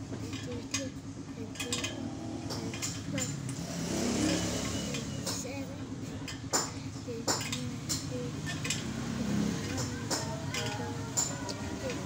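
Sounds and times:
metal clicks and clinks: 1.5 - 3.6, 6.3 - 9.0, 9.6 - 12.0.

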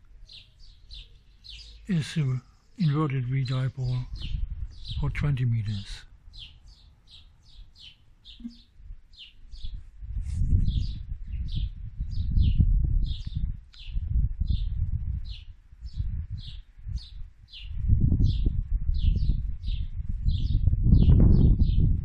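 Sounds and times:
small bird chirping: 0.1 - 9.8, 10.5 - 21.9
wind rumble on microphone: 3.4 - 22.0.

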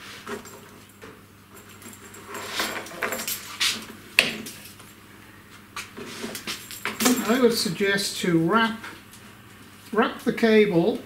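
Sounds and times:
plastic chain links rattling: 1.6 - 3.6, 6.4 - 7.7.

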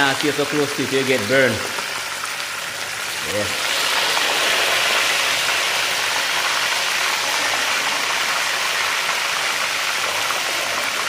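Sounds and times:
fish sizzling in hot oil: 0.0 - 11.0.

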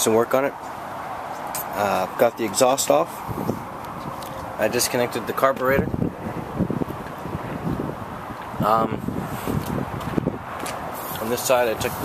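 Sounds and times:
wind rumbling on microphone: 3.1 - 12.0.

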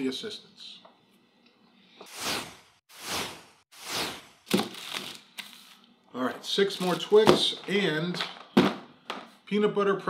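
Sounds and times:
whooshes: 2.1 - 4.5.

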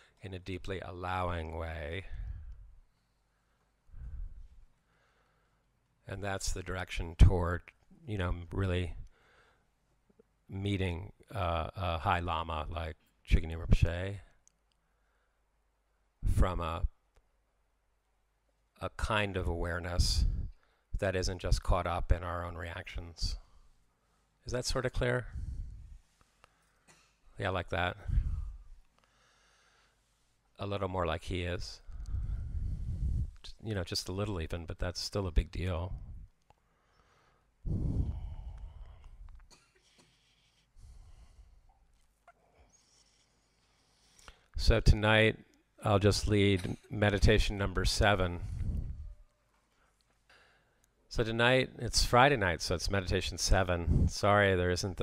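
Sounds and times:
man lecturing: 0.0 - 2.3, 6.1 - 9.0, 10.5 - 14.3, 18.8 - 20.4, 21.0 - 23.5, 24.5 - 25.4, 27.4 - 28.4, 30.6 - 31.9, 33.4 - 36.0, 44.6 - 48.6, 51.1 - 55.0.

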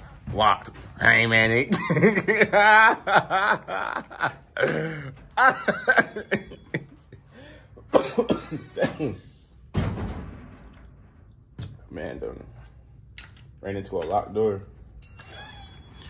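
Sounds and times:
man coughing: 4.6 - 6.8, 7.8 - 9.4.

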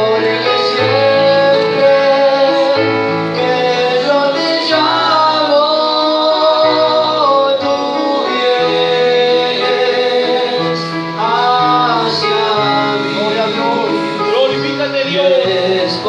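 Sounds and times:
man singing through microphone: 0.0 - 16.0
sustained chords: 0.0 - 16.0.

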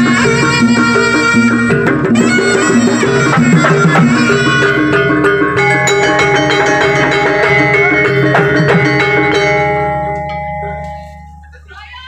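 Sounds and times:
gamelan ringing metal tones: 0.0 - 11.8
voices: 10.6 - 12.0.

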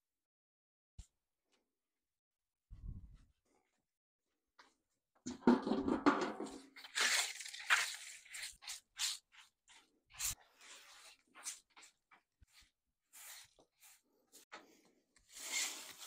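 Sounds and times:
broom sweeping tiled floor: 6.4 - 16.0.

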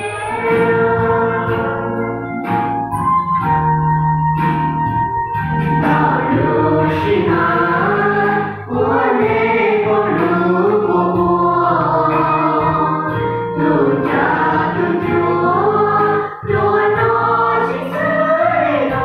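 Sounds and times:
children's choir singing a hymn: 0.0 - 2.2, 5.8 - 19.0.

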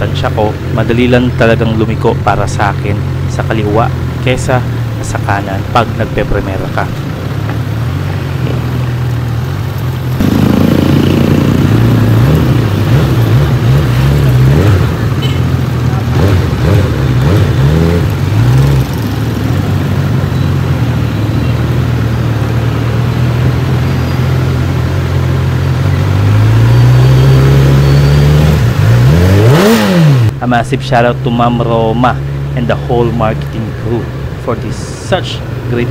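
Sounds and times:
motorcycle engine revving: 0.0 - 30.4.

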